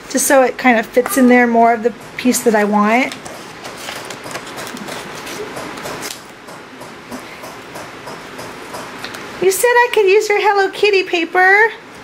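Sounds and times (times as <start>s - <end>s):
paper rustling and clicking: 3.1s - 6.3s.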